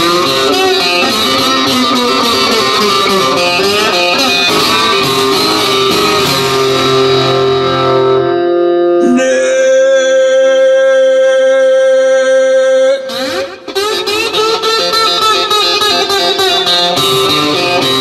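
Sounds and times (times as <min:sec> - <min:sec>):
guitar led instrumental: 0:00.0 - 0:18.0.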